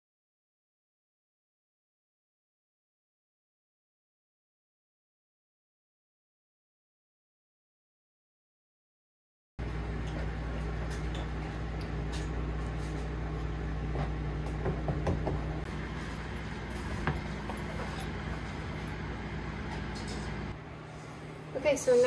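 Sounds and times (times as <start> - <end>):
low electrical hum: 9.6 - 22.0.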